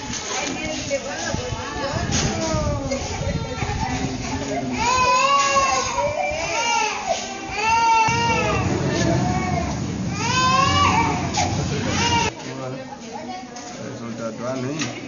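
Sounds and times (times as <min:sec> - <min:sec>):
high-pitched wailing cries: 0:04.8 - 0:12.3.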